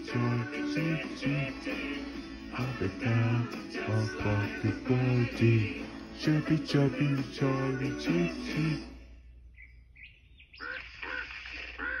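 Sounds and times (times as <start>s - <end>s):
bird-like squawking calls: 9.6s - 12.0s.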